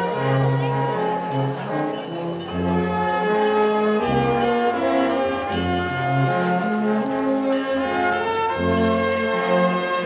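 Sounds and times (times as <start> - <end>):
slow brass band music: 0.0 - 10.0.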